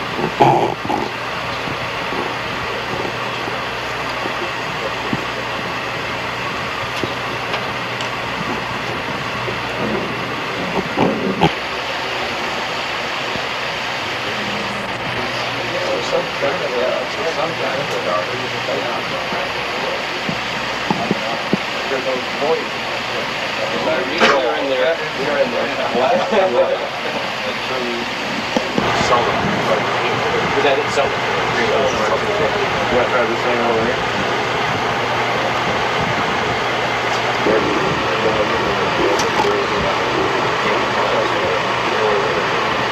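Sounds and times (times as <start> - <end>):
indistinct voices talking: 0.0 - 42.9
steady hum and hiss: 0.0 - 42.9.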